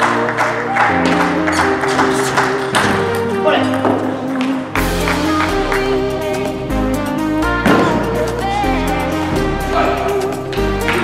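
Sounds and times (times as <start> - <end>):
background music with steady beat: 0.0 - 11.0
deep bass: 4.8 - 11.0.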